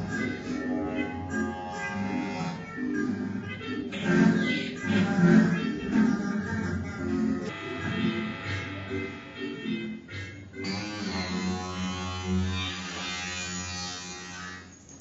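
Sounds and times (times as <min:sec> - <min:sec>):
buzzing synth drone: 0:00.0 - 0:06.0, 0:07.2 - 0:14.8
choppy synthetic notes: 0:00.0 - 0:11.9.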